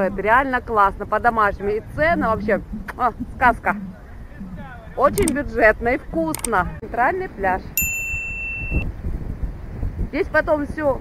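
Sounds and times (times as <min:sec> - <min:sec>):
wind buffeting microphone: 0:00.0 - 0:11.0
notification bell ding: 0:07.8 - 0:08.8.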